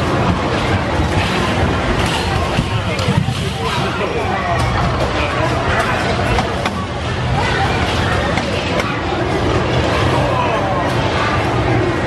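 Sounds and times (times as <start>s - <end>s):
indistinct voices chatter: 0.0s - 12.0s.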